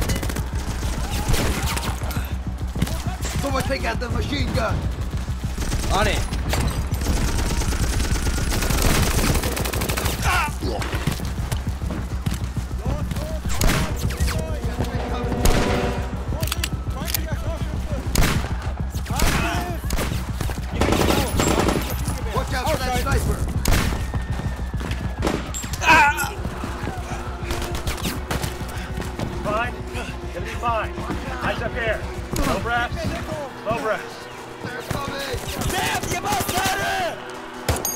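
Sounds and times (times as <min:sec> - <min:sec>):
people shouting: 0:00.0 - 0:03.7, 0:07.4 - 0:12.8, 0:13.9 - 0:37.9.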